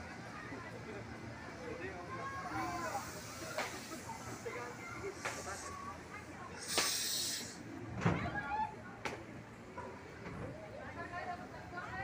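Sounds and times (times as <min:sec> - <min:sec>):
train passing through water hiss: 0:02.4 - 0:07.7.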